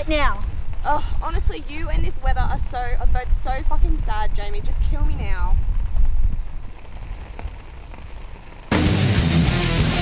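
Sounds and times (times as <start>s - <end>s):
rain falling: 0.0s - 10.0s.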